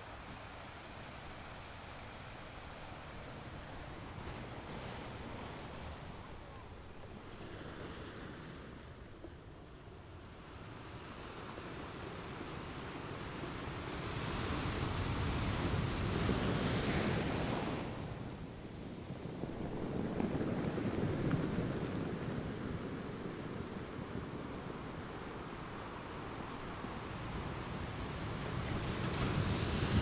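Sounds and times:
small waves washing on beach: 0.0 - 30.0
wind buffeting microphone: 14.4 - 30.0.

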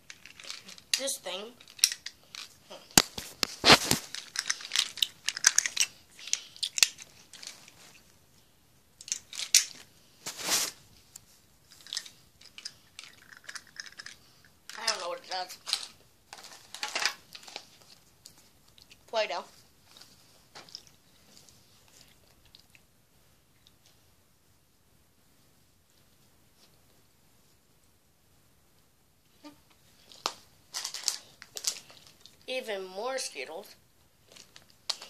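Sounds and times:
plastic wrappers crinkling: 0.0 - 8.1, 9.0 - 10.8, 11.7 - 19.0, 30.0 - 32.4, 34.2 - 35.0.

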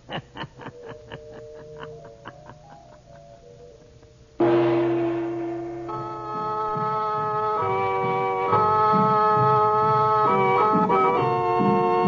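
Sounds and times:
organ sustained notes: 0.7 - 12.0.

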